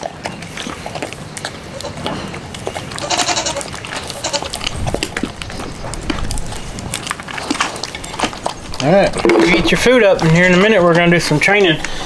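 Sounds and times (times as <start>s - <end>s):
puppy eating from metal bowl: 0.0s - 12.0s
goat bleating: 2.9s - 4.7s.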